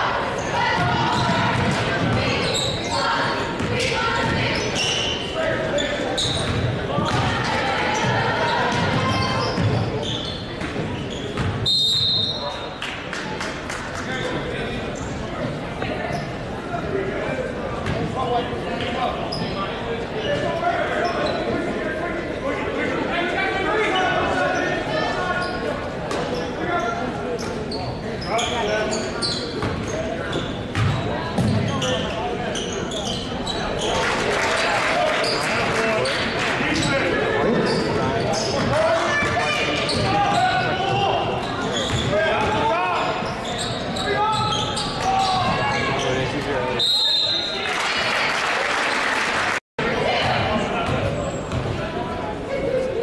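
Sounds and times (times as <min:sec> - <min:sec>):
crowd and players calling out: 0:00.0 - 0:53.0.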